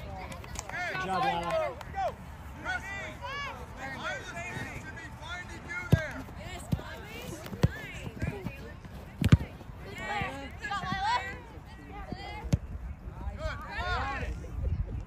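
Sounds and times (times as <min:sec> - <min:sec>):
soccer ball kicked on turf: 0:05.8 - 0:11.2.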